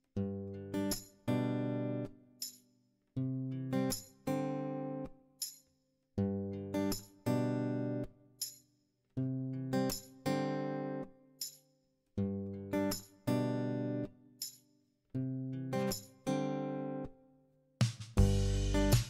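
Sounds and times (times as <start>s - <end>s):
acoustic guitar slow chords: 0.2s - 2.1s, 6.2s - 8.1s, 12.3s - 14.2s, 18.2s - 19.0s.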